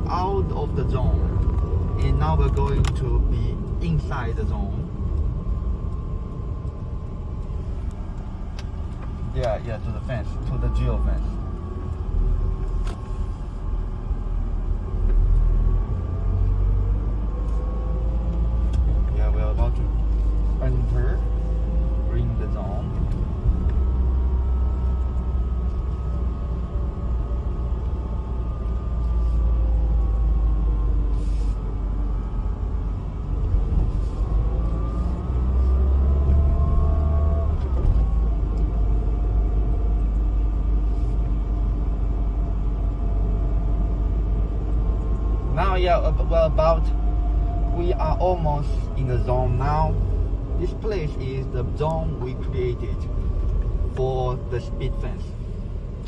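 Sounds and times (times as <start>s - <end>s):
car engine from inside cabin: 0.0s - 56.0s
road rumble: 0.0s - 56.0s.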